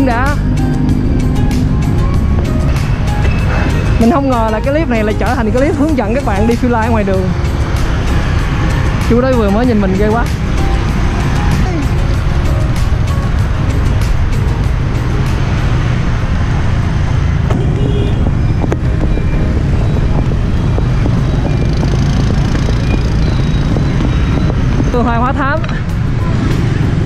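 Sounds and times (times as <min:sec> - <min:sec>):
motorbike traffic: 0:00.0 - 0:27.0
wind rumble on microphone: 0:00.0 - 0:27.0.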